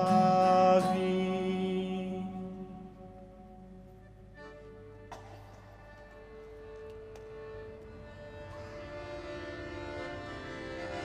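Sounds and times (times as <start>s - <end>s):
instrumental music held notes: 0.0s - 11.0s.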